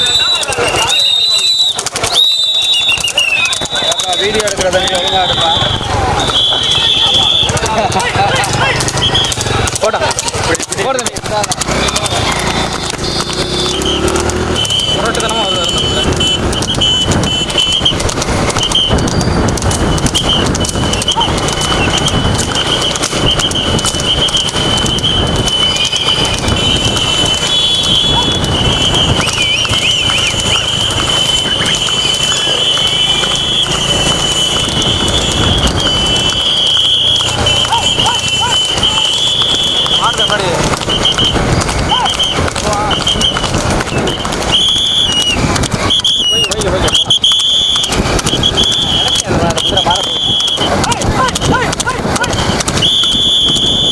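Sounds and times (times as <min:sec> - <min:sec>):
horse hoofbeats: 0:00.0 - 0:53.9
motorcycles running: 0:00.0 - 0:53.9
voices: 0:00.0 - 0:53.9.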